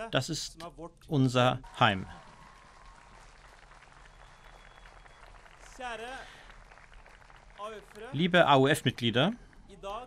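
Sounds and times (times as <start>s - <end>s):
faint crowd applause: 1.6s - 10.0s.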